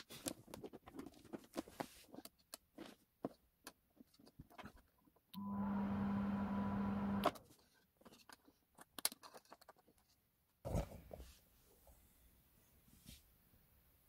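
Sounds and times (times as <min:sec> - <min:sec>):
paper rustling: 0:00.0 - 0:05.0, 0:07.4 - 0:11.4
electrical buzz with hum: 0:05.4 - 0:07.3.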